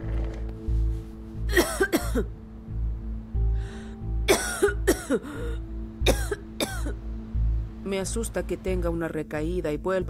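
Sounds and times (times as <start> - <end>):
background music with low beat: 0.0 - 10.0
woman coughing: 1.5 - 2.3, 4.3 - 7.0.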